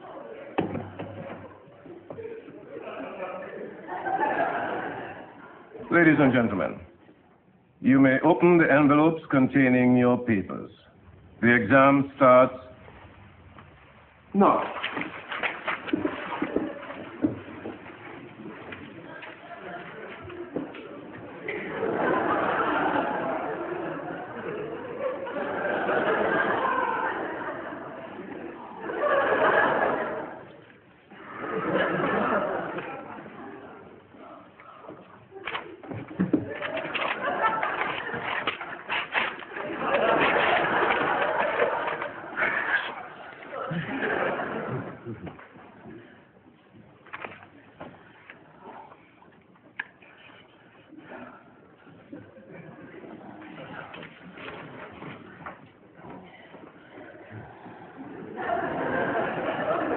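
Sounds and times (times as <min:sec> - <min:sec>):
paper rustling and crackling: 0:14.4 - 0:20.4, 0:36.3 - 0:42.9.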